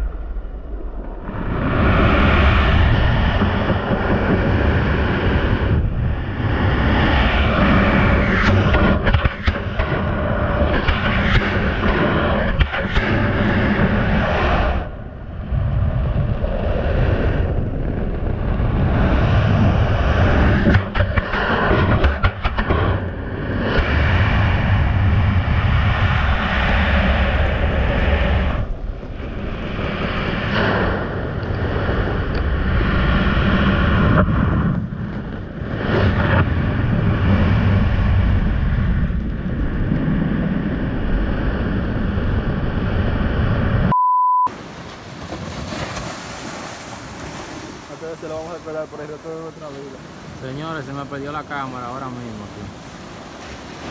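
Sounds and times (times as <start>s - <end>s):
surf on the beach: 0.0s - 43.8s, 44.4s - 53.9s
muffled underwater surf rushing: 0.0s - 53.9s
steady beep: 43.9s - 44.5s.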